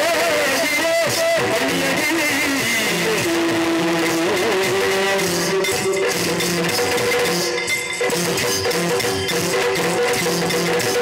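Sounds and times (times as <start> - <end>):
stage music melody: 0.0 - 11.0.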